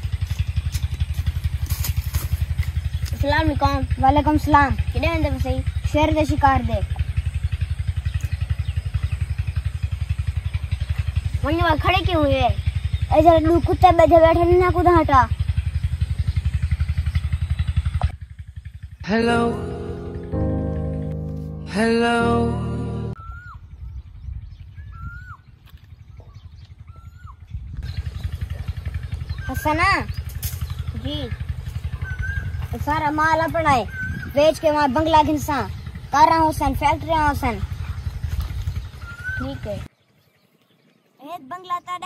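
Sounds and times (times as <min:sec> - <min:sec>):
engine running steadily: 0:00.0 - 0:23.2, 0:25.6 - 0:39.9
bird whistled call: 0:23.2 - 0:28.0, 0:29.1 - 0:32.8, 0:33.7 - 0:35.0, 0:37.7 - 0:39.8.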